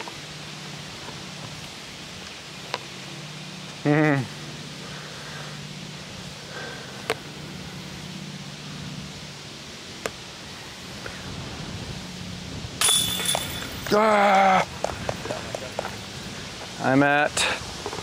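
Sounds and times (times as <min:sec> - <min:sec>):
short vocal sound: 0:03.8 - 0:04.4
disc hitting basket chains: 0:12.8 - 0:14.2.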